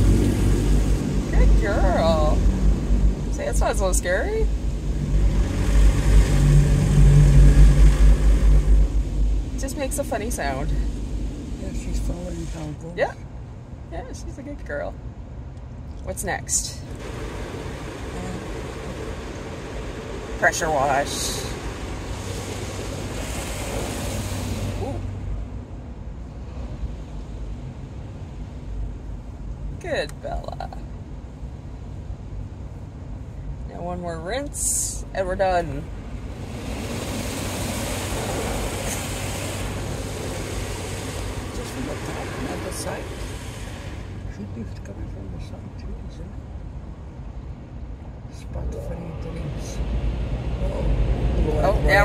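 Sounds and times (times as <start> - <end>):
car wash machinery rumble: 0.0 - 52.0.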